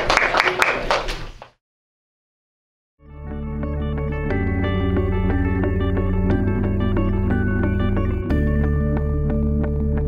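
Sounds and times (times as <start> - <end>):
audience clapping: 0.0 - 1.5.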